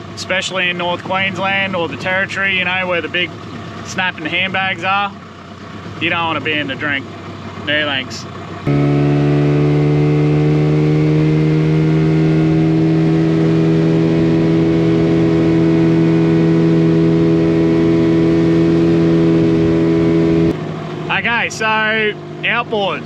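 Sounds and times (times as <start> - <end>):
outboard motor humming: 0.0 - 23.0.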